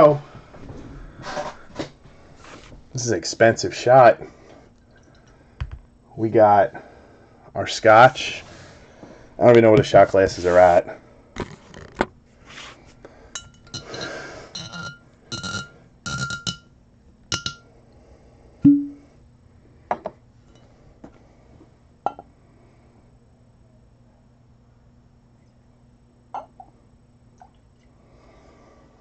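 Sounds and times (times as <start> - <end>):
glass clinking and ringing: 13.4 - 16.7, 17.3 - 17.6, 22.1 - 22.3, 26.4 - 26.7.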